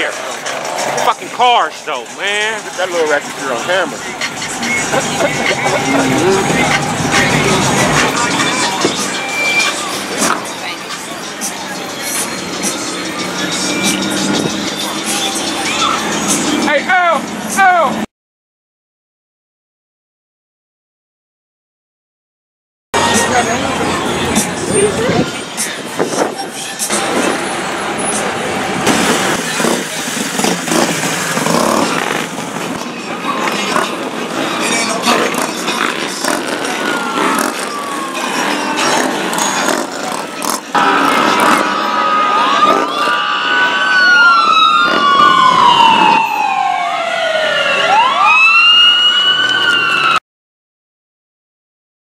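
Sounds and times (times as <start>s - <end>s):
voices: 0.0s - 18.0s, 23.0s - 45.5s
street traffic engines: 0.0s - 18.1s, 23.0s - 50.2s
emergency vehicle siren: 4.0s - 16.3s, 35.8s - 50.2s.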